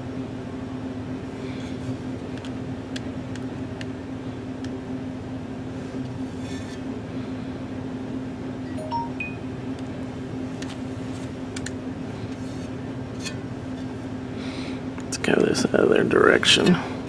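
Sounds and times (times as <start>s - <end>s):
low machine hum: 0.0s - 17.0s
high chime-like pings: 8.7s - 9.4s.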